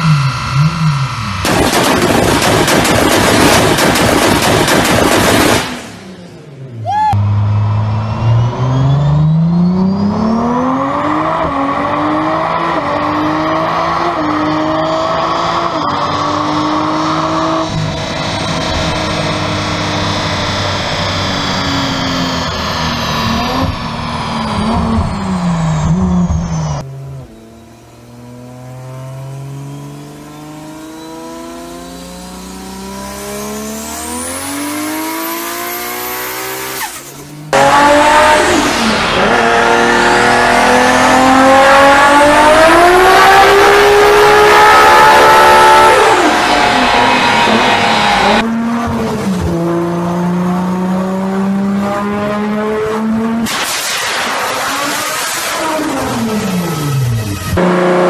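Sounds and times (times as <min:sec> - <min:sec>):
car engine revving on dyno: 0:00.0 - 0:06.6, 0:07.2 - 0:58.0.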